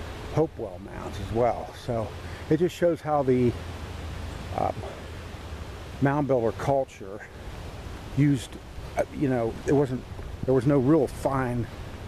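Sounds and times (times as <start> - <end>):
low outdoor rumble: 0.0 - 12.0
man saying uh: 0.4 - 3.5, 4.6 - 5.0, 8.2 - 11.7.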